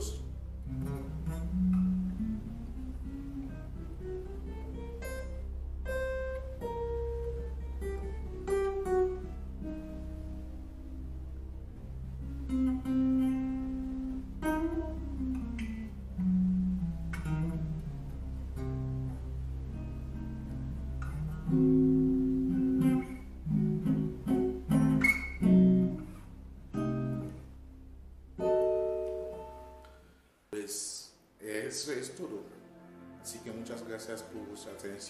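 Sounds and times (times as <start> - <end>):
jazz guitar playing a scale: 0.0 - 30.0.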